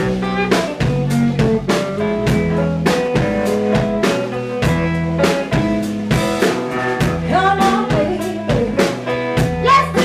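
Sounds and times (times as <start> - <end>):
drum hits: 0.0 - 8.2
electric bass: 0.0 - 10.0
electric guitar: 0.0 - 10.0.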